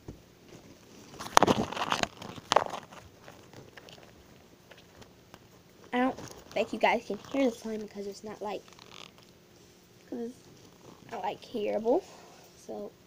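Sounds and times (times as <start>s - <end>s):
faint rustling: 0.0s - 12.8s
slime squelching and crackling: 0.7s - 9.4s, 10.4s - 11.3s.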